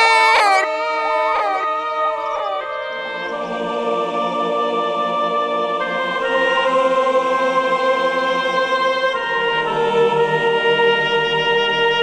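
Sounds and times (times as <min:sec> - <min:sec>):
women wailing and sobbing: 0:00.0 - 0:03.6
slow mournful music: 0:00.0 - 0:12.0.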